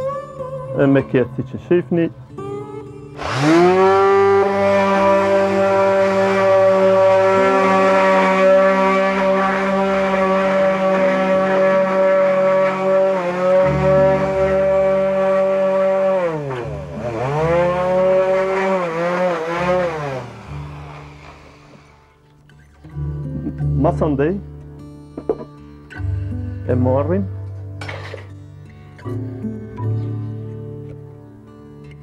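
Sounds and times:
electric orbital sander whining: 0:03.2 - 0:22.2.

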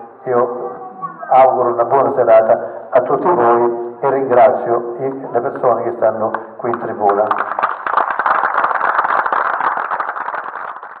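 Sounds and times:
audience applauding: 0:06.7 - 0:11.0.

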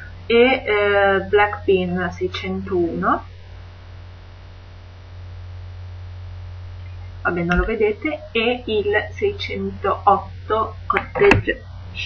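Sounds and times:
electrical mains hum: 0:00.0 - 0:12.0
faint hiss: 0:00.0 - 0:12.0.

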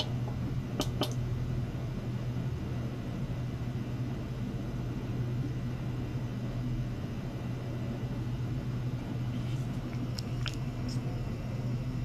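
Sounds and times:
ultrasonic cleaner humming: 0:00.0 - 0:12.0.

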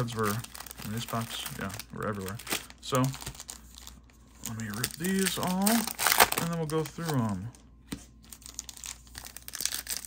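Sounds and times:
foil pack crinkling and tearing: 0:00.0 - 0:07.6, 0:08.3 - 0:10.0.

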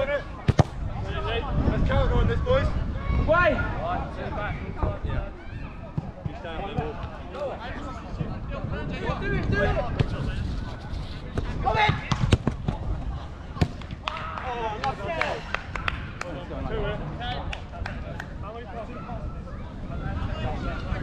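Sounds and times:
ball being kicked: 0:00.4 - 0:00.8, 0:11.4 - 0:12.8.

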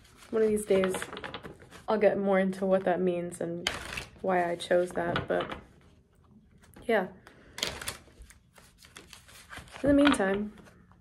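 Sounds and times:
cards being shuffled: 0:00.0 - 0:01.9, 0:07.6 - 0:11.0.

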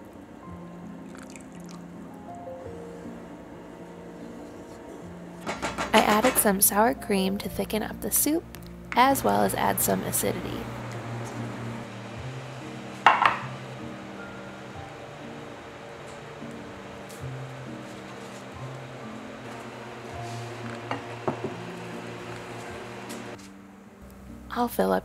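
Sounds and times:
soft instrumental music: 0:00.0 - 0:25.0.

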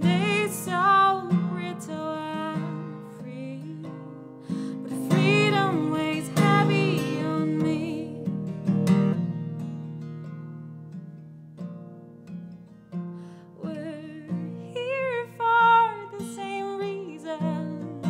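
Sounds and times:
woman singing: 0:00.0 - 0:08.6, 0:13.5 - 0:18.0
strummed acoustic guitar: 0:00.0 - 0:18.0.

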